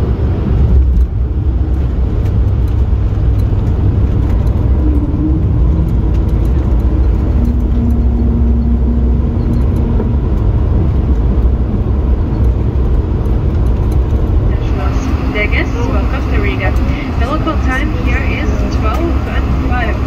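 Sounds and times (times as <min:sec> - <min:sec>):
airliner cabin rumble: 0:00.0 - 0:20.0.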